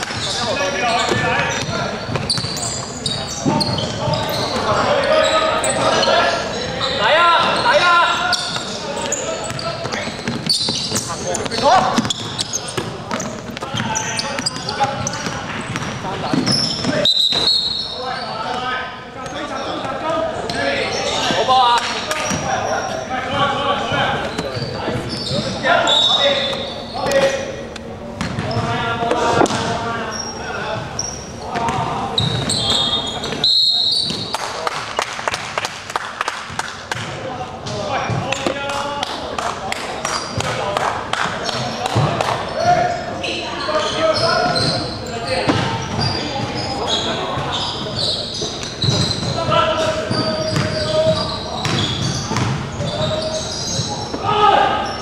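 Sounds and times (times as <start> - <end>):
players shouting in a gym: 0.0 - 27.7, 37.0 - 55.0
basketball bouncing on wooden court: 1.0 - 4.4, 8.3 - 16.9, 28.2 - 28.7, 48.8 - 49.5, 50.1 - 54.0.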